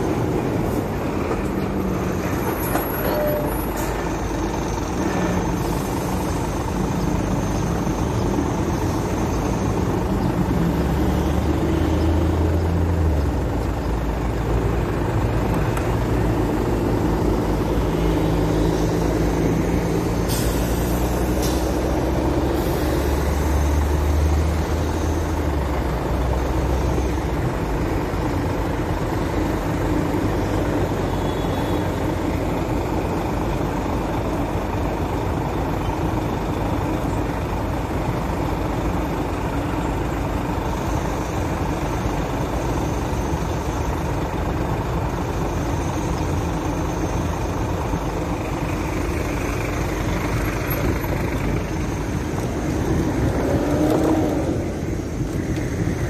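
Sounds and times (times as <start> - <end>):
diesel engines of trucks and buses: 0.0 - 56.0
air brake hiss: 20.2 - 21.8.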